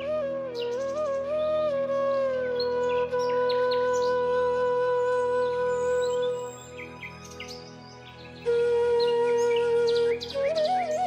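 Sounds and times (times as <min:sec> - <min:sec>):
flute long low note: 0:00.0 - 0:11.0
birds chirping: 0:05.2 - 0:11.0.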